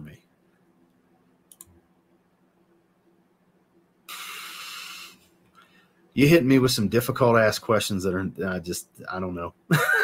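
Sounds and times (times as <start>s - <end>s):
computer mouse clicks: 1.5s - 1.8s
steady hiss: 4.1s - 5.3s.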